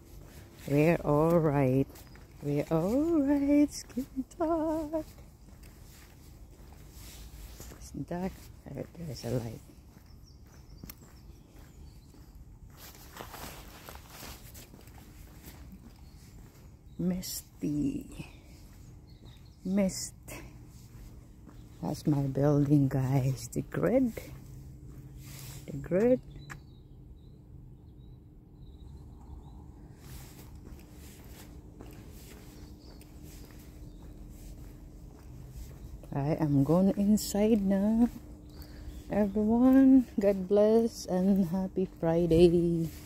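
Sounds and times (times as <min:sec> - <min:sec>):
faint footsteps outdoors: 0:00.0 - 0:43.0.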